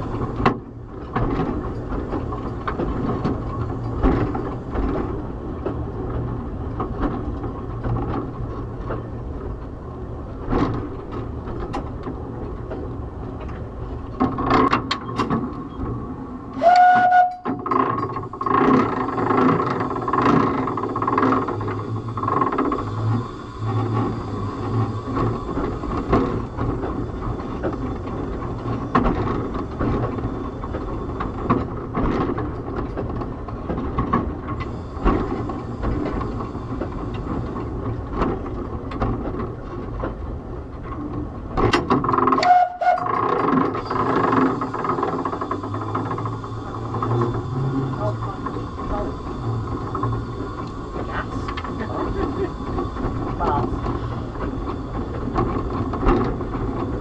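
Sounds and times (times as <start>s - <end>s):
steam locomotive running: 0.0s - 57.0s
steam whistle blasts: 16.6s - 17.6s, 42.4s - 43.2s.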